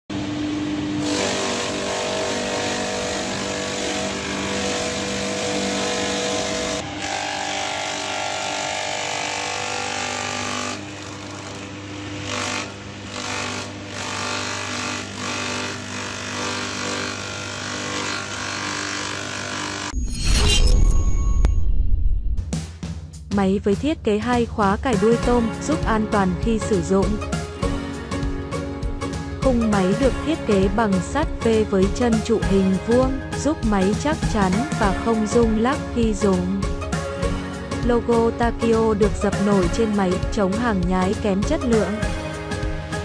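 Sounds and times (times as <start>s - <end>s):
electric motor humming: 0.8s - 20.0s
blades shredding plant stem: 1.0s - 11.7s.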